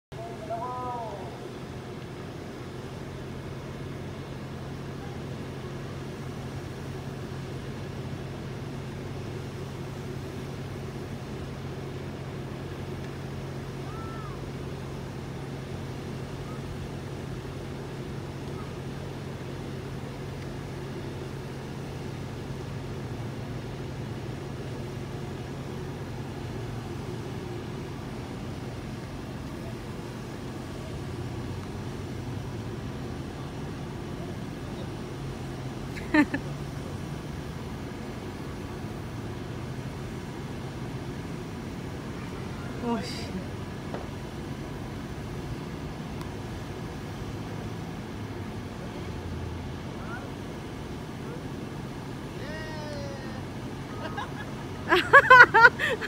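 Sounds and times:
low mechanical hum: 0:00.1 - 0:56.0.

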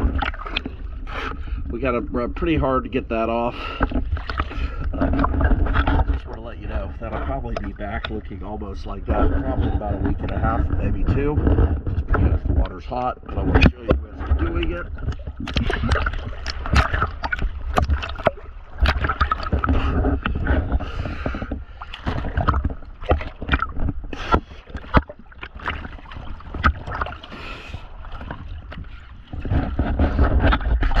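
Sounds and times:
low rumble of moving water: 0:00.0 - 0:31.0
water splashing against boat hull: 0:00.0 - 0:31.0.

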